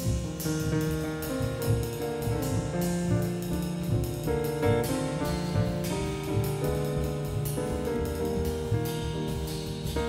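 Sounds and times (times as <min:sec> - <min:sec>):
double bass: 0:00.0 - 0:10.0
drums: 0:00.0 - 0:10.0
piano chords: 0:00.0 - 0:10.0.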